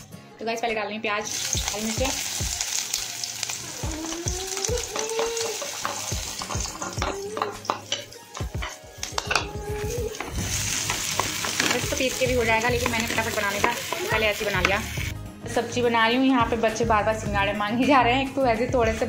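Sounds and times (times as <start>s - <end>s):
onions sizzling in oil: 1.2s - 15.1s.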